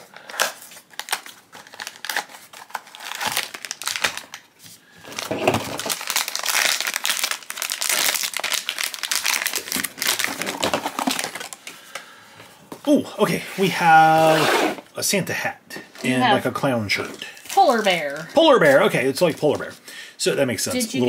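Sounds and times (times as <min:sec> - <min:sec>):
foil bag tearing and crinkling: 0:00.0 - 0:04.4, 0:05.0 - 0:11.6, 0:17.4 - 0:18.4.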